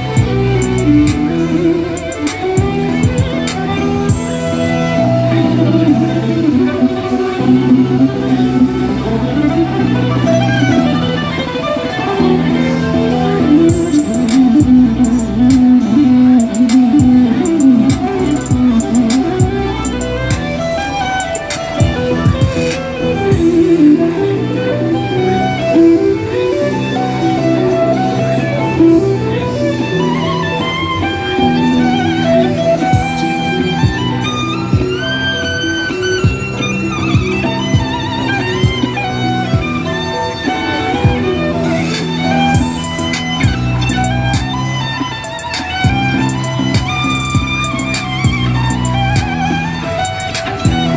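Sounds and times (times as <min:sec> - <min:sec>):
backing track with drum beat: 0:00.0 - 0:05.1, 0:13.5 - 0:23.8, 0:30.8 - 0:50.9
electric violin melody: 0:00.0 - 0:50.9
kick-drum beat: 0:00.2 - 0:01.3, 0:02.1 - 0:04.3, 0:13.7 - 0:14.8, 0:17.8 - 0:20.5, 0:21.8 - 0:22.7, 0:23.3 - 0:23.6, 0:32.9 - 0:33.2, 0:36.2 - 0:36.4, 0:37.1 - 0:38.0, 0:42.5 - 0:44.6, 0:45.7 - 0:49.5, 0:50.6 - 0:50.9.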